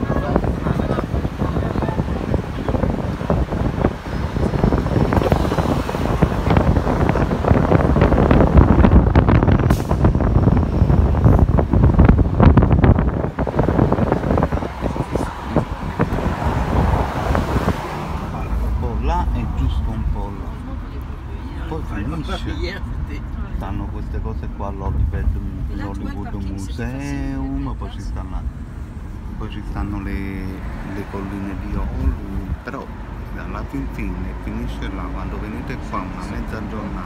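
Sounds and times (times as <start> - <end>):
wind buffeting microphone: 0.0 - 25.8
city street traffic: 0.0 - 37.0
voices of passers-by: 0.0 - 37.0.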